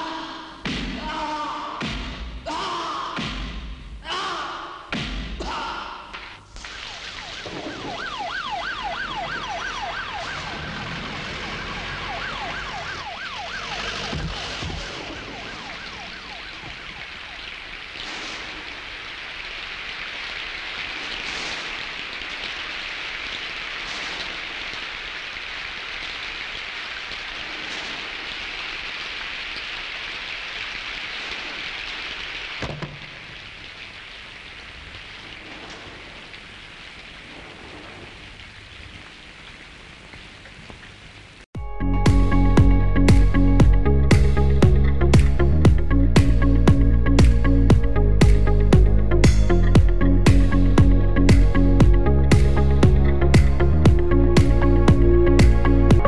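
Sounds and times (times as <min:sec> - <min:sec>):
thud: 0:00.6 - 0:01.1, 0:01.8 - 0:02.5, 0:04.9 - 0:05.6, 0:14.1 - 0:15.5, 0:32.6 - 0:33.2
heavy rain pouring: 0:04.0 - 0:41.5, 0:42.1 - 0:56.0
siren wailing: 0:06.6 - 0:17.7.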